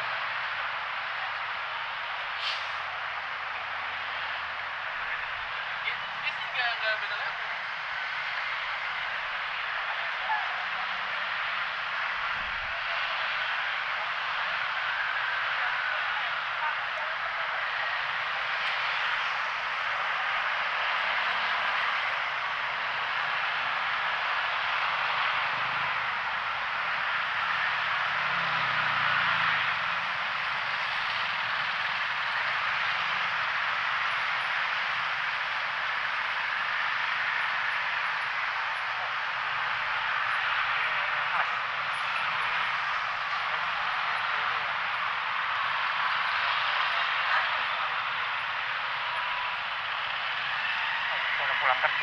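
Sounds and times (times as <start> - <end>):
road traffic noise: 0.0 - 52.0.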